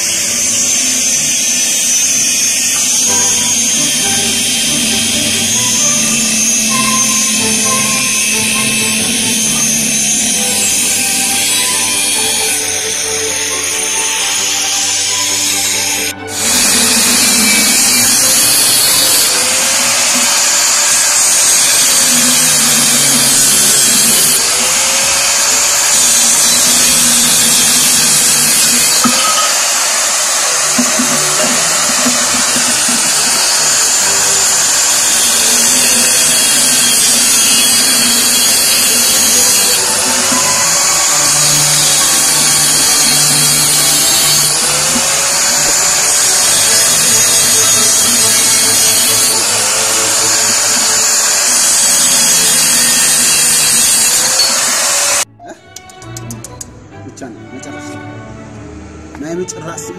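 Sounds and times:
angle grinder cutting steel: 0.0s - 56.6s
background music: 0.0s - 59.9s.

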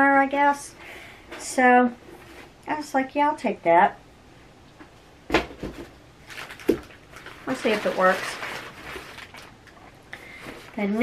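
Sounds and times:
items knocking on a desk: 5.3s - 5.9s
rustling: 5.6s - 11.0s.

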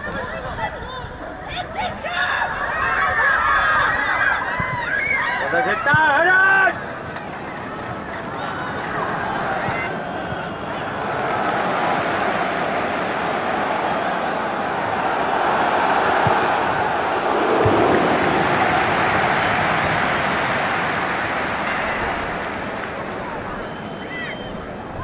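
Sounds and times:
open-air rushing ambience: 8.7s - 25.0s.

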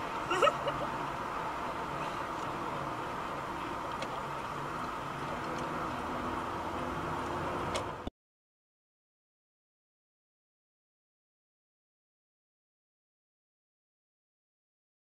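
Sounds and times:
vehicle running hum: 0.0s - 8.1s.

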